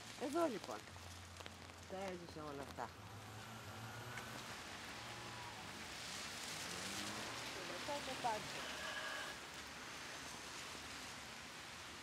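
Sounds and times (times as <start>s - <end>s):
rain on an umbrella: 0.0s - 12.0s
town traffic hum: 0.0s - 12.0s
tyres hissing on wet road: 0.0s - 12.0s.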